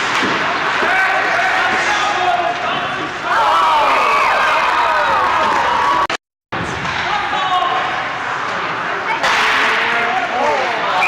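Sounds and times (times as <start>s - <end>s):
ice rink noise: 0.0s - 11.0s.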